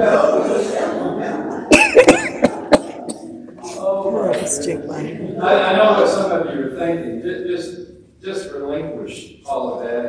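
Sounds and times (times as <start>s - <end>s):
person coughing: 1.7s - 3.3s.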